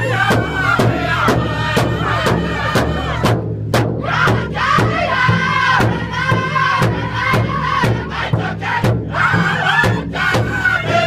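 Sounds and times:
men singing together: 0:00.0 - 0:03.3, 0:04.0 - 0:11.0
large drum struck in unison: 0:00.0 - 0:11.0.

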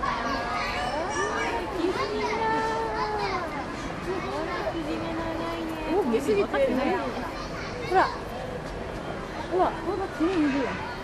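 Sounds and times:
voices chattering and calling out: 0:00.0 - 0:11.0.

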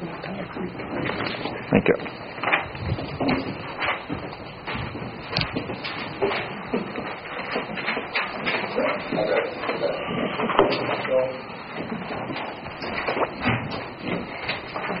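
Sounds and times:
paper rustling: 0:00.2 - 0:15.0
small clicks and knocks: 0:02.1 - 0:11.2.

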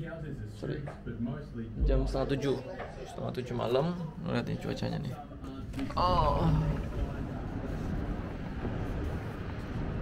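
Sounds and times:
city traffic rumble: 0:06.5 - 0:10.0.

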